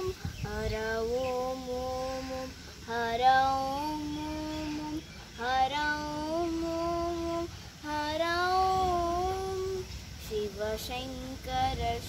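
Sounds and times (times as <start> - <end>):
girl singing with sliding ornaments: 0.0 - 12.0.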